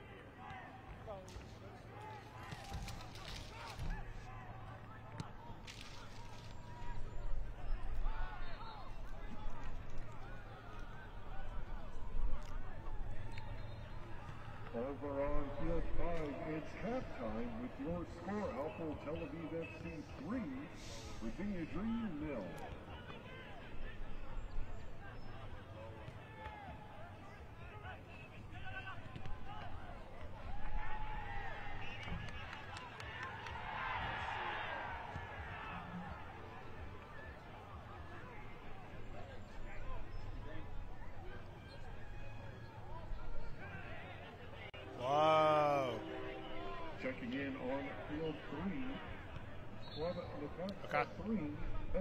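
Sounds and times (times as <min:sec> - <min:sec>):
background chatter of voices: 0:00.0 - 0:52.0.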